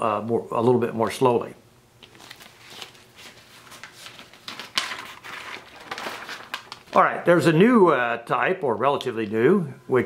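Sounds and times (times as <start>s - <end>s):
paper rustling and crinkling: 2.0s - 7.1s.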